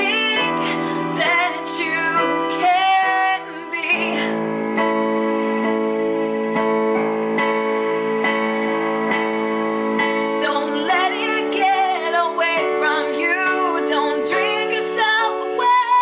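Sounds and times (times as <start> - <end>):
person singing: 0.0 - 5.0, 10.0 - 16.0
electronic keyboard piano ballad: 0.0 - 16.0.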